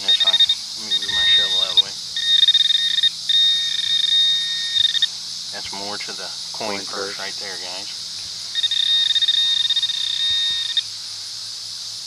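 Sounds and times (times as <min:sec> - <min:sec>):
metal detector pulsing tone: 0:00.0 - 0:05.1, 0:08.5 - 0:10.8.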